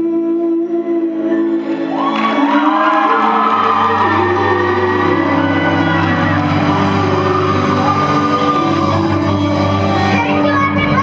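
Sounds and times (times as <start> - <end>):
live band music: 1.6 - 11.0
crowd cheering and whooping: 1.7 - 10.2
steady bass line: 2.0 - 11.0
child singing into a microphone: 10.1 - 11.0.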